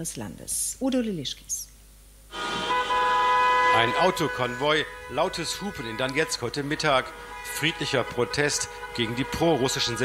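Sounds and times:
car horns honking in chord: 0:02.3 - 0:10.0
man speaking: 0:03.7 - 0:10.0.

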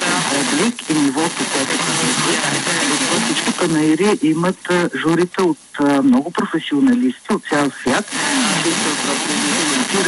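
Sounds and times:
radio reception hiss: 0:00.0 - 0:10.0
radio speech through small speaker: 0:00.0 - 0:10.0.

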